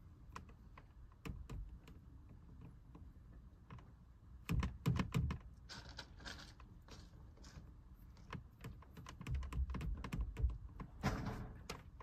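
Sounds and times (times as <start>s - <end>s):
soft rustling: 5.6s - 9.2s
cord clicking against glass: 8.2s - 11.0s.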